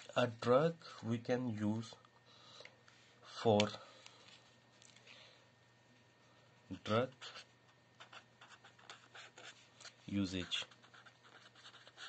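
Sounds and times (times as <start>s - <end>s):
marker writing on paper: 6.8s - 12.0s.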